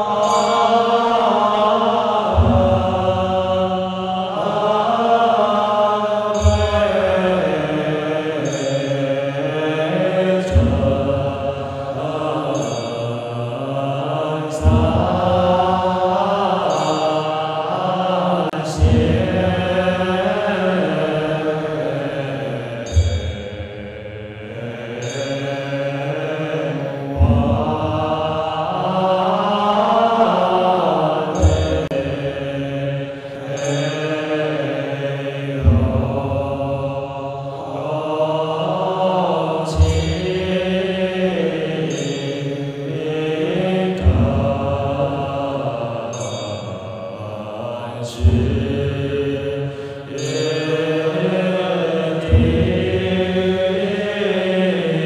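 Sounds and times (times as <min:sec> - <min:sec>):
monks chanting in unison: 0:00.0 - 0:55.0.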